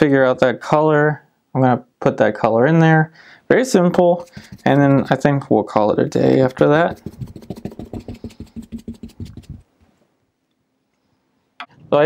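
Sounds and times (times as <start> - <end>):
brush scrubbing paper towel: 4.2 - 5.3, 6.0 - 9.7.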